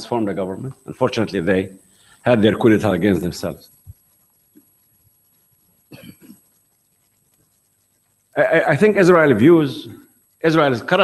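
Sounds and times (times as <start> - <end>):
short cough: 5.9 - 6.4.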